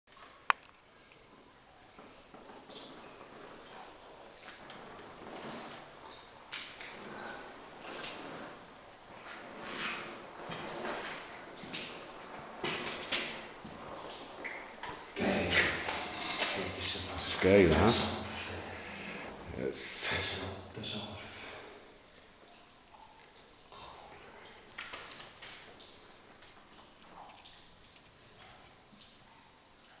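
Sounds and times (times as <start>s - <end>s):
low hiss: 5.5s - 28.4s.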